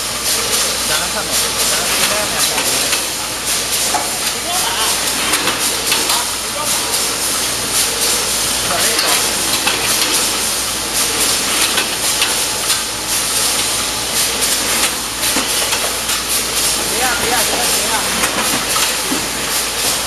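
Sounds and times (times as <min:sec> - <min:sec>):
machinery hissing: 0:00.0 - 0:20.0.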